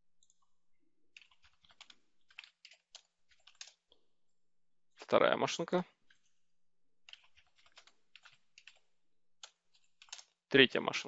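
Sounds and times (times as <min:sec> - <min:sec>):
computer keyboard typing: 0:01.1 - 0:04.0, 0:07.0 - 0:10.4.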